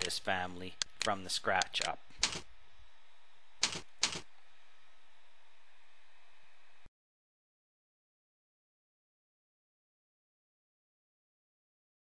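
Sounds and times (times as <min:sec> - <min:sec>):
computer keyboard keystrokes: 0:00.8 - 0:02.4, 0:03.6 - 0:04.2.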